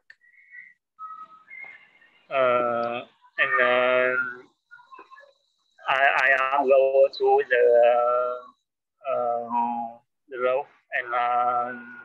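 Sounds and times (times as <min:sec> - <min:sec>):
faint whistle-like tones: 0:00.2 - 0:06.3, 0:11.0 - 0:12.0.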